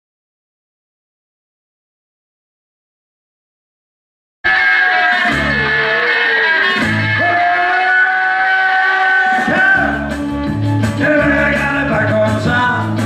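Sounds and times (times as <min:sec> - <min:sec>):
guitar-led rock music: 0:04.4 - 0:13.0
man singing rock song: 0:04.5 - 0:10.2, 0:10.8 - 0:13.0.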